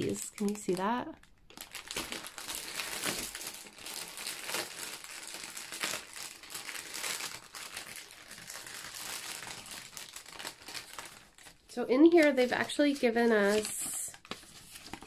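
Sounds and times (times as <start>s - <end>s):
plastic packaging crinkling: 0.0s - 15.0s.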